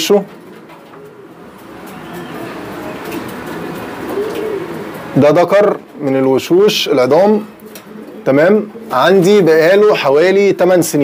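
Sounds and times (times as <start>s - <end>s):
pigeons cooing: 0.0s - 10.5s.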